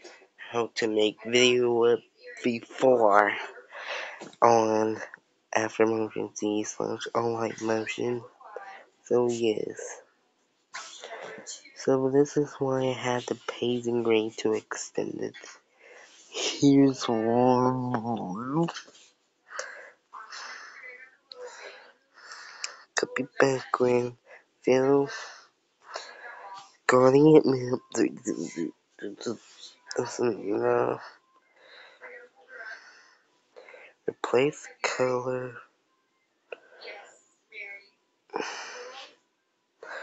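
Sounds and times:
person whispering: 0:00.0 - 0:10.0, 0:10.8 - 0:19.0, 0:19.6 - 0:33.0, 0:34.1 - 0:35.6, 0:38.4 - 0:39.1.

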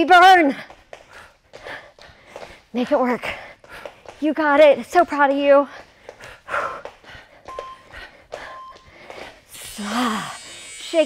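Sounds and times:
footsteps on studio floor: 0:00.0 - 0:09.6
people breathing: 0:00.6 - 0:04.2, 0:05.5 - 0:10.7.

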